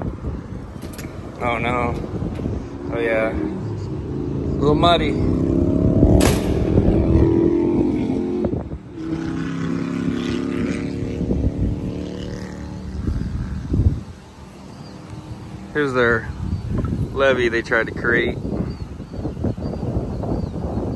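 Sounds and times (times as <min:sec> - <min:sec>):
engine running: 0:00.0 - 0:16.3
sharp knock: 0:06.2 - 0:07.0.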